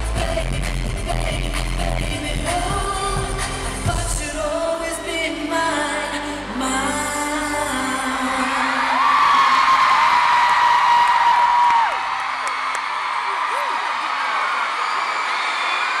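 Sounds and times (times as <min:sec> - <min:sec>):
music: 0:00.0 - 0:09.2
crowd screaming and cheering: 0:08.0 - 0:16.0.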